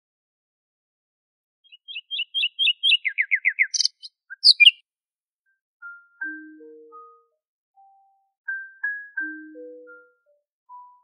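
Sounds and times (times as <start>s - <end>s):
bird chirping: 1.6s - 4.8s.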